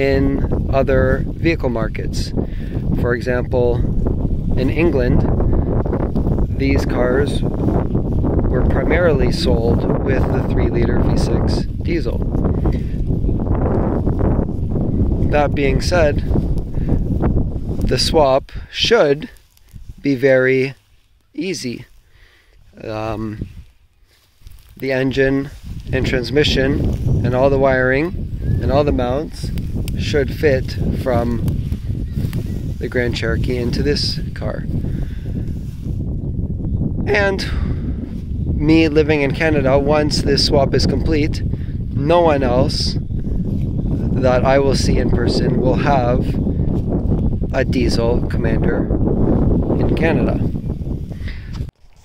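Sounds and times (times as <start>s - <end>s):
wind buffeting microphone: 0.0s - 52.0s.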